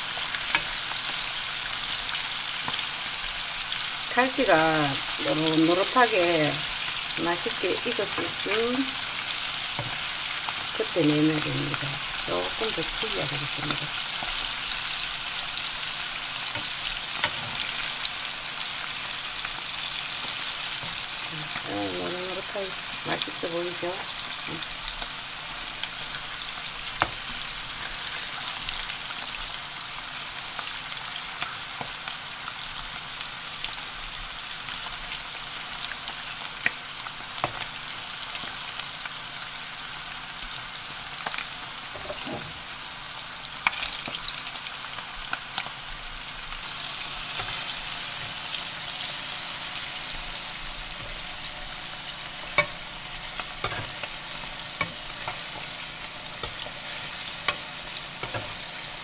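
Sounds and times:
fish deep-frying in oil: 0.0 - 59.0.

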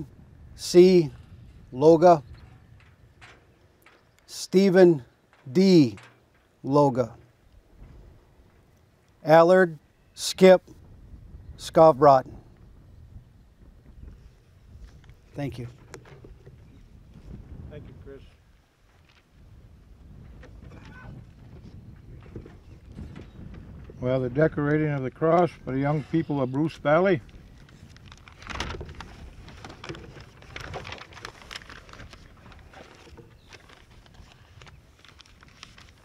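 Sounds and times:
wind rumble on microphone: 0.0 - 4.1, 7.1 - 8.8, 10.6 - 36.0
faint voice: 20.7 - 21.2
rustling: 27.3 - 36.0.

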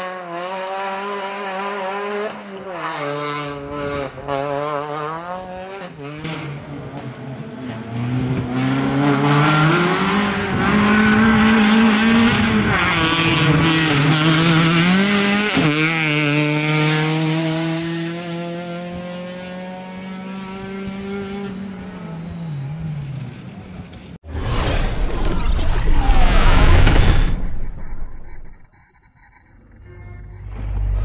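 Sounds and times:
rally car engine revving: 0.0 - 25.4.

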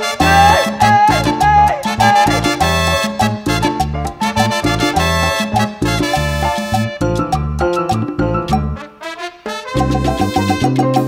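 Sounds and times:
instrumental cumbia band: 0.0 - 11.0.

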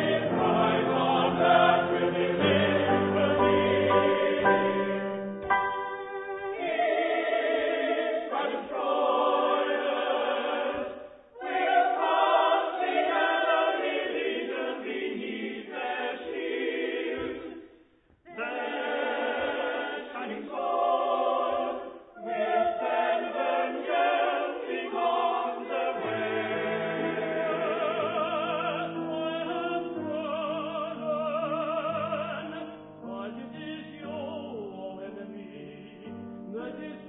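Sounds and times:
mixed chorus singing: 0.0 - 5.3, 6.1 - 37.0.

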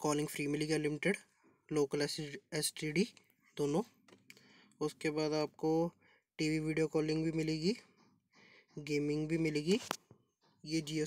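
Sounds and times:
man speaking: 0.0 - 4.0, 4.8 - 8.0, 8.8 - 10.0, 10.6 - 11.0.

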